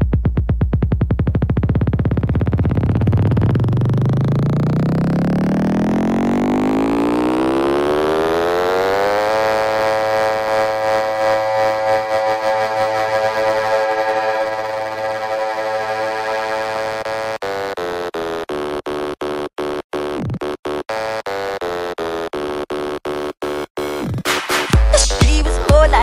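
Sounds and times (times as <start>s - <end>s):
buzzy synth riser: 2.6s - 17.8s.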